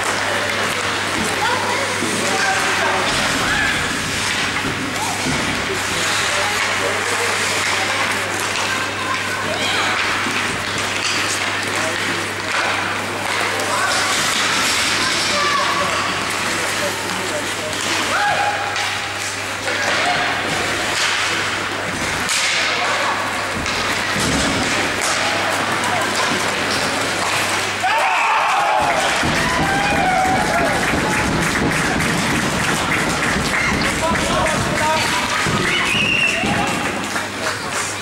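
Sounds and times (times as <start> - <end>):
hockey sticks and puck knocking: 0.0 - 38.0
spectators shouting: 27.7 - 32.1.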